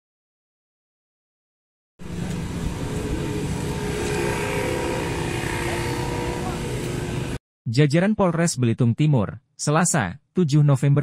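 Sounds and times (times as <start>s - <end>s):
vehicle engine running: 2.0s - 7.4s.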